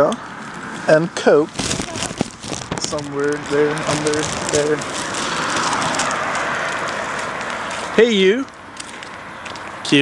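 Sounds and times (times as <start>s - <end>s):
rushing noise on microphone: 0.7s - 8.2s.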